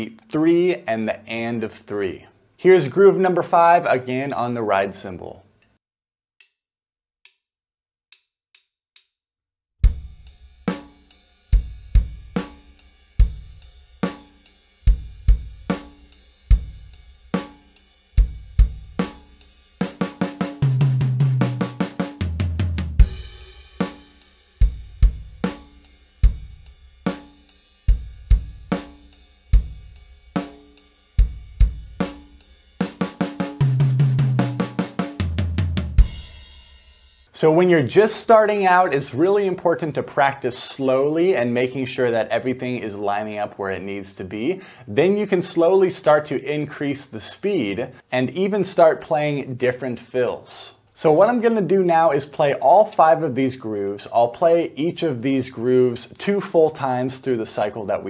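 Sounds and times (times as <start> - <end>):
drum kit rock groove: 9.8 - 37.3
fast hits on low drum: 11.6 - 14.2, 14.9 - 17.5, 18.2 - 24.0, 24.6 - 26.7, 27.9 - 29.0, 29.6 - 30.5, 31.2 - 36.4.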